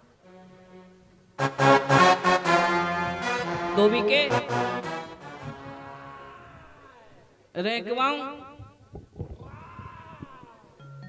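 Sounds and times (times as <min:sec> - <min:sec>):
man's quavering vocal cry: 0:06.0 - 0:07.4, 0:09.4 - 0:10.8.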